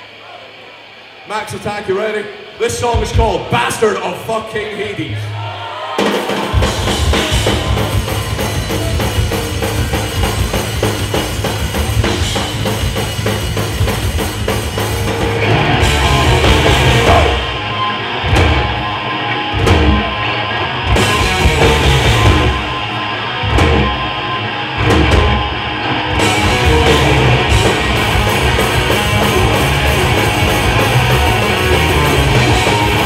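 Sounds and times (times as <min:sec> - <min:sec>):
metal band playing: 0:06.0 - 0:33.0.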